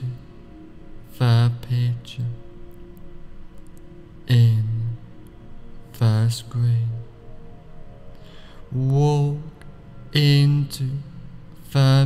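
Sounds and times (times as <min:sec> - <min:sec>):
background music with held tones: 0:00.0 - 0:12.0
man's low drawn-out voice: 0:01.1 - 0:02.4.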